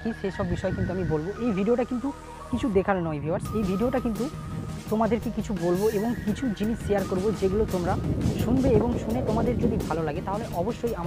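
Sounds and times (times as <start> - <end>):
man speaking: 5.0 - 11.0.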